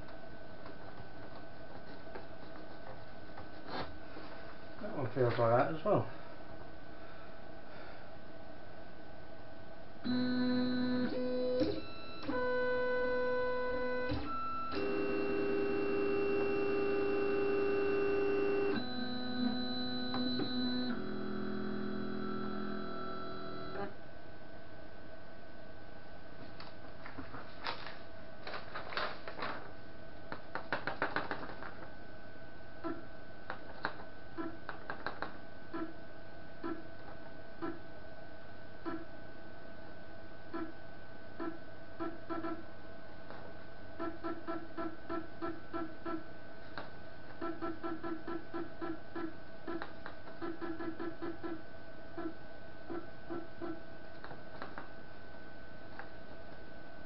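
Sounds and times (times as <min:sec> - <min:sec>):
steady electrical whine: 0:00.0 - 0:47.7.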